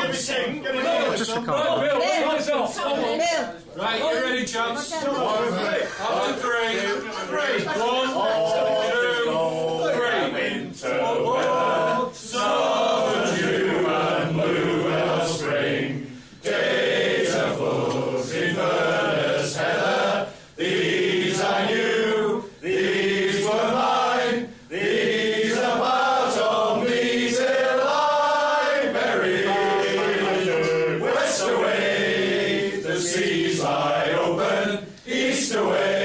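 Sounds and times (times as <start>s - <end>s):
men singing unaccompanied: 5.3s - 36.0s.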